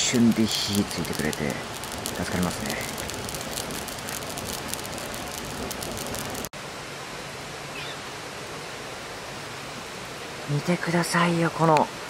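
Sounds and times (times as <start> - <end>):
wood fire crackling and popping: 0.0 - 6.5
steady rushing hiss: 0.0 - 12.0.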